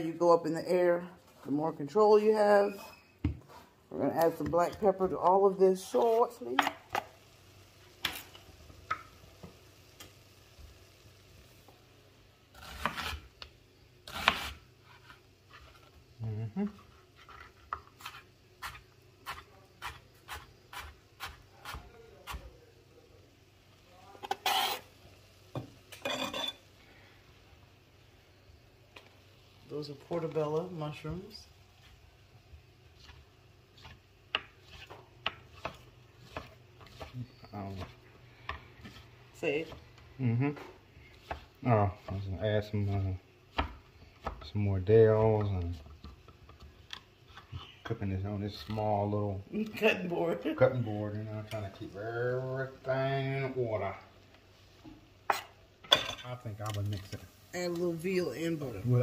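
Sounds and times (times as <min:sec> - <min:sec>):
knife slicing onion on cutting board: 0:12.5 - 0:13.4, 0:14.0 - 0:15.8, 0:17.2 - 0:22.5, 0:32.9 - 0:39.8, 0:41.1 - 0:44.4.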